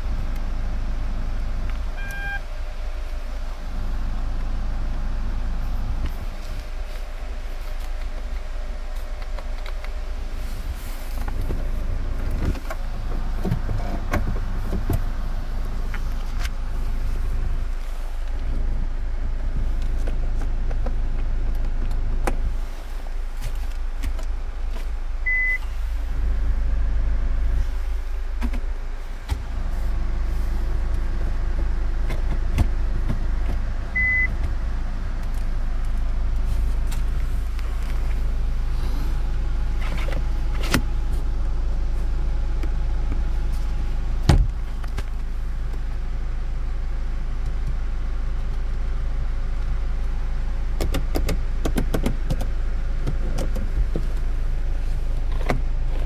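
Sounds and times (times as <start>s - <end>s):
low engine rumble: 0.0s - 56.0s
short high beeps: 2.0s - 2.4s.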